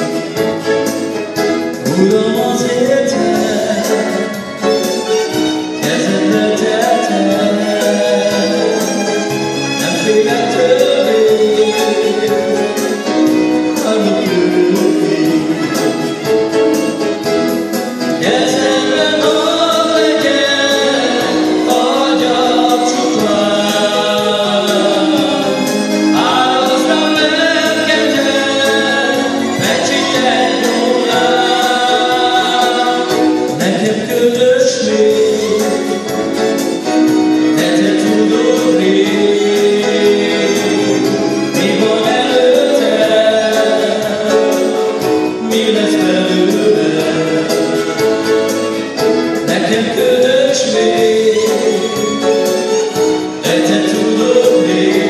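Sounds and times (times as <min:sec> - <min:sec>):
live band playing worship song: 0:00.0 - 0:55.0
men singing together: 0:01.8 - 0:16.2, 0:17.8 - 0:55.0.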